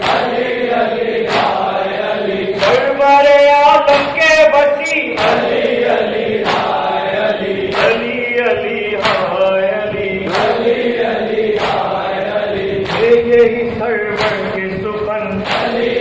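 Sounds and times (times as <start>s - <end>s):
hands slapping chests: 0.0s - 0.5s, 1.2s - 1.7s, 4.9s - 6.9s, 9.0s - 9.4s, 10.3s - 10.8s, 11.4s - 12.0s, 15.4s - 16.0s
men chanting in unison: 0.0s - 16.0s.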